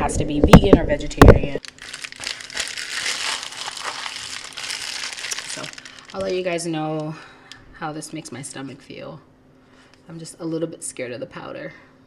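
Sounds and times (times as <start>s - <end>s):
plastic bag crinkling: 1.6s - 7.1s.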